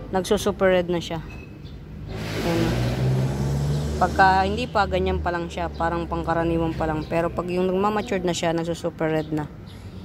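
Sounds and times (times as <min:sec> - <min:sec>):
vehicle engine accelerating: 0:02.0 - 0:08.0.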